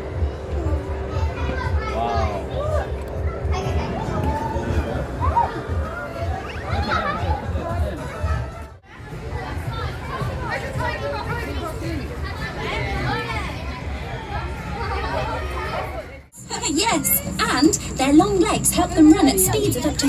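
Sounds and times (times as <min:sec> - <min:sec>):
indistinct chatter: 0:00.0 - 0:20.0.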